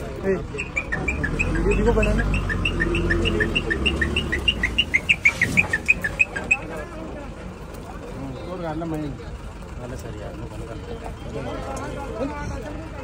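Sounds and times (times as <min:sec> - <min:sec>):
bird chirping: 0:00.6 - 0:06.7.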